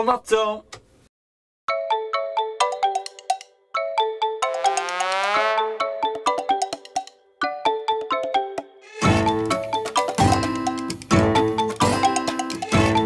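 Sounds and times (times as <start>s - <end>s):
bouncy bright background music: 1.7s - 13.0s.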